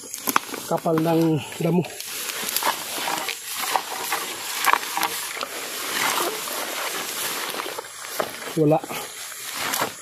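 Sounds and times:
grass and leaves rustling: 0.0 - 10.0
pole snapping through undergrowth: 0.0 - 10.0.

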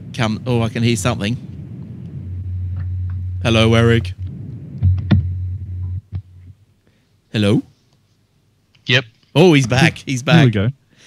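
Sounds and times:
low steady hum: 0.0 - 10.8.

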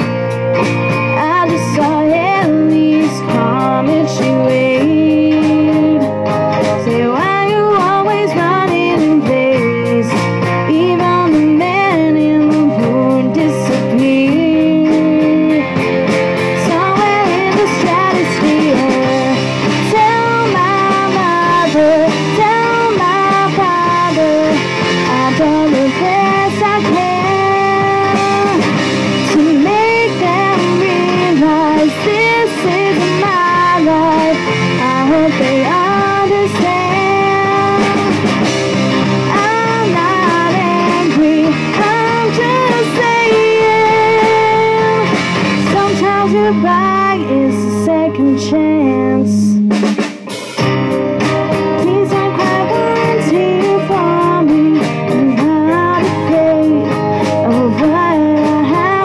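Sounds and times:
live rock band playing: 0.0 - 59.0
woman singing: 0.9 - 50.0, 51.6 - 59.0.

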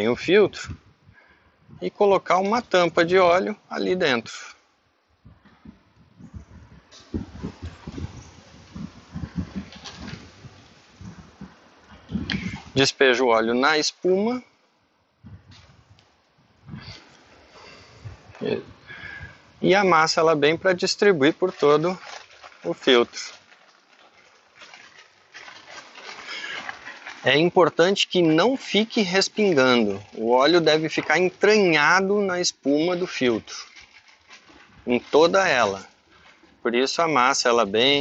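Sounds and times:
plastic bag handled: 5.8 - 12.8, 16.8 - 38.0.

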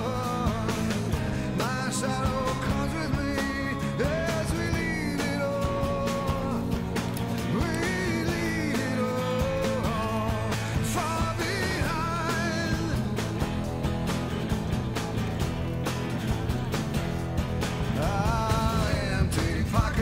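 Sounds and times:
rock song with singing: 0.0 - 20.0.

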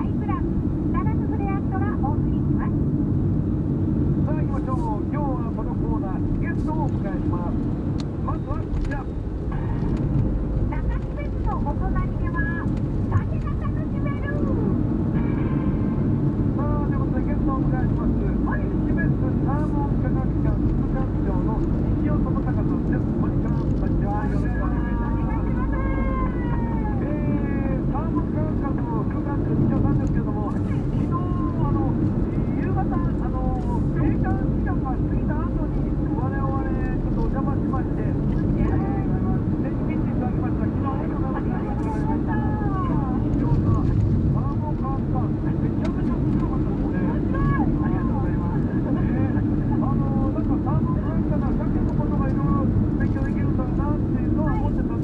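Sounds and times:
car engine and tyre rumble: 0.0 - 55.0
radio talk programme: 4.2 - 55.0.

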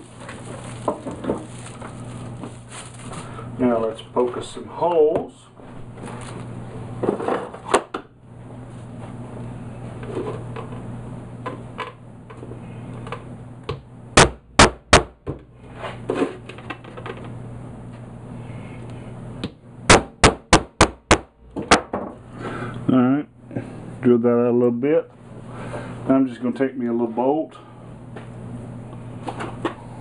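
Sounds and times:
hammer tapping a punch: 13.7 - 15.4, 19.4 - 21.8.

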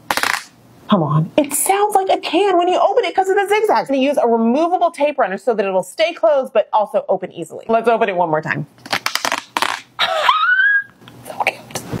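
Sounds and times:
woman's high squealing laugh: 10.0 - 11.0.

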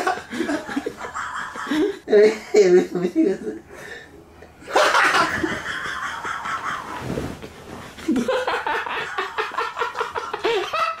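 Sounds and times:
man laughing hard: 0.0 - 2.0, 8.0 - 11.0.

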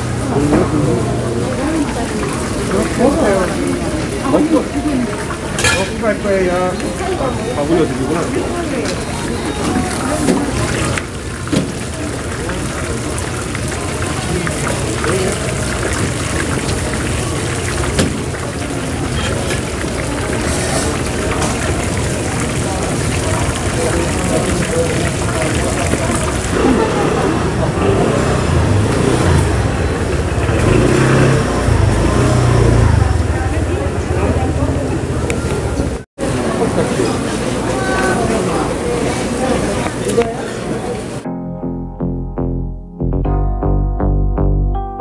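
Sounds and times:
people chattering: 0.0 - 41.5
fritters deep-frying in oil: 0.1 - 27.4
motor scooter engine running: 26.0 - 36.0.

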